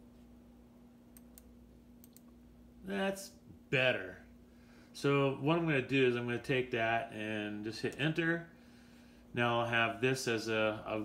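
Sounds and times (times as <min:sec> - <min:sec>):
computer mouse clicking: 0:01.2 - 0:02.3.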